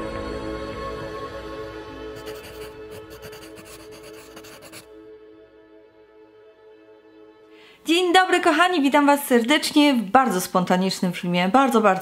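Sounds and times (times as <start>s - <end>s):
soft ambient music: 0.0s - 9.5s
pen scratching on paper: 2.2s - 4.9s, 11.7s - 12.0s.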